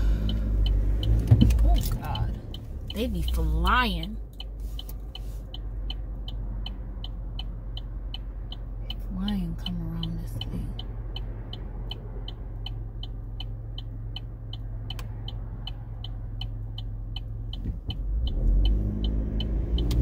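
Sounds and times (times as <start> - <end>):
car engine idling: 0.0 - 19.2
turn signal ticking: 0.0 - 20.0.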